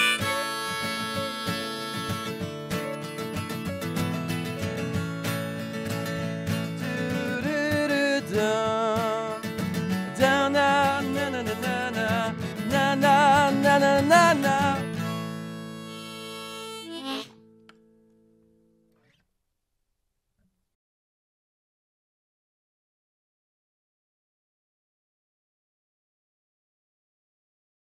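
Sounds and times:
harmonica melody: 0.0s - 3.4s, 13.0s - 17.5s
strummed acoustic guitar: 0.0s - 19.2s.

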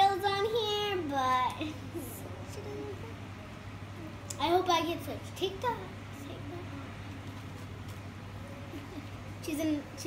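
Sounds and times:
faint child's voice murmuring: 0.0s - 4.4s
steady low hum: 0.0s - 10.0s.

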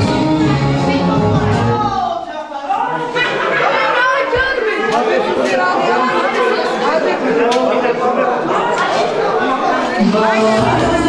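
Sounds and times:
crowd of people talking: 0.0s - 11.0s.

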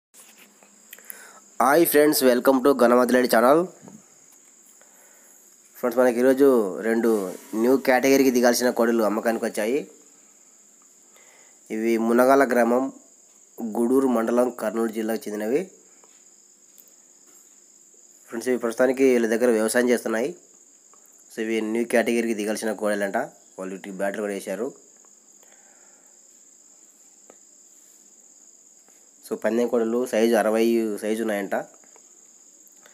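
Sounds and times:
crickets chirring: 0.2s - 32.9s
high-pitched insect trill: 0.2s - 32.9s
faint click: 0.4s - 1.2s
man speaking: 1.6s - 3.9s, 5.8s - 10.0s, 11.7s - 13.0s, 13.6s - 15.7s, 18.3s - 20.4s, 21.3s - 24.8s, 29.3s - 31.8s.

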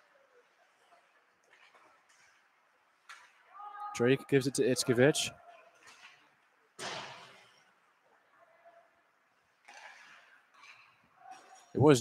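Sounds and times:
sharp impact echoing in rink: 0.4s - 3.9s, 5.5s - 7.9s, 9.5s - 11.8s.

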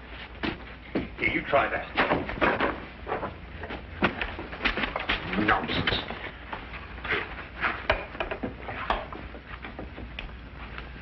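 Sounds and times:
wooden knocks bumps and scrapes: 2.0s - 5.3s, 7.1s - 10.2s.

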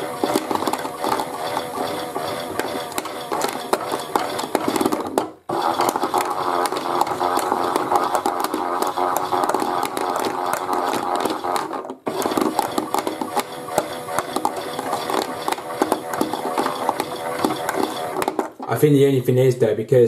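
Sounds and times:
small items clicking inside drum: 0.0s - 18.8s
toy washing machine motor running: 0.0s - 18.8s.

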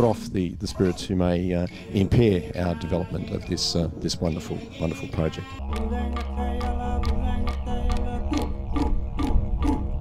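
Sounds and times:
clapsticks beat: 5.6s - 9.8s
didgeridoo drone: 5.6s - 10.0s.

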